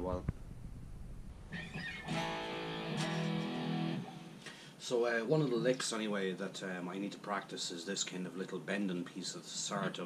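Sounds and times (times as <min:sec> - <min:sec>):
electric guitar notes ringing: 0:01.5 - 0:04.4.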